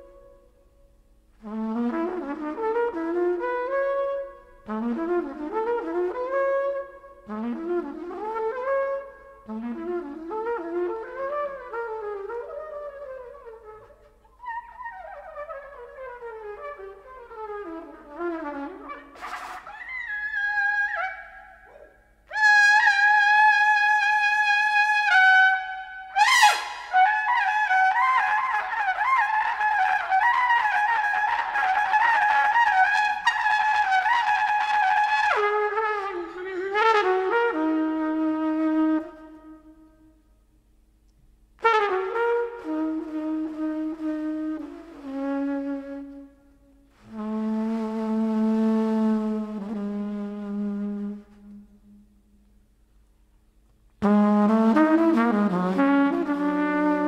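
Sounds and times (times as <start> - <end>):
trumpet playing jazz: 1.4 - 39.9, 41.6 - 52.0, 54.0 - 57.0.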